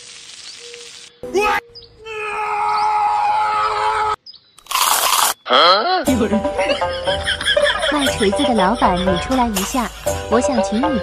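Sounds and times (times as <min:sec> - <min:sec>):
teeth biting crunch: 0:04.6 - 0:05.4.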